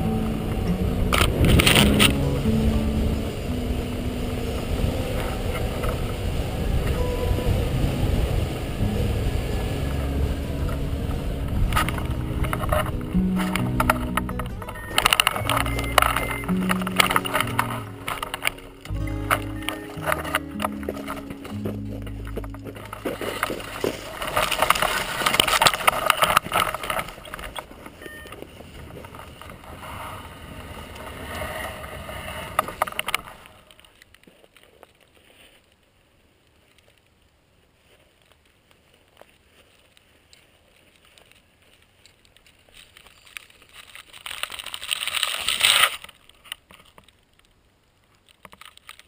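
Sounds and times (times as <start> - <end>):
dry grass brushing: 0.0 - 4.4, 9.8 - 30.4
wind rushing over microphone: 0.0 - 14.2
feet running on soft ground: 19.4 - 25.2.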